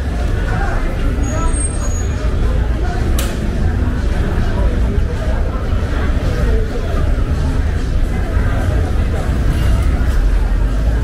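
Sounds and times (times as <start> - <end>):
low rumble of traffic: 0.0 - 11.0
voices babbling: 0.0 - 11.0.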